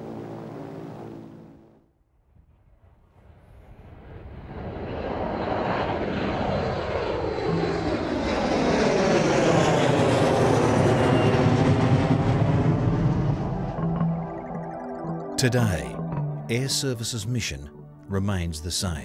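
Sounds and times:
jet airliner engine roar: 0.0 - 1.8, 3.2 - 14.6
steady low drone: 0.0 - 1.8, 6.9 - 18.7
phasing whoosh of aircraft: 2.4 - 14.0.

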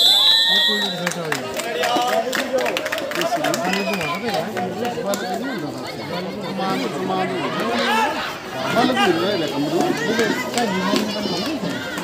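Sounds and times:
people shouting: 6.0 - 12.0.

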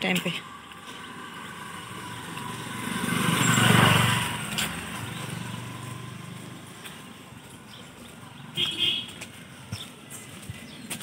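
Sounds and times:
motorcycle passing by: 0.5 - 8.6.

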